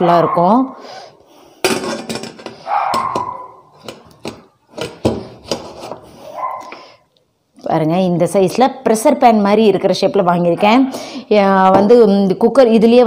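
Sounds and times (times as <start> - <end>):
metal lid clinking and knocking: 1.6 - 5.6
metal lid scraping: 1.6 - 6.8.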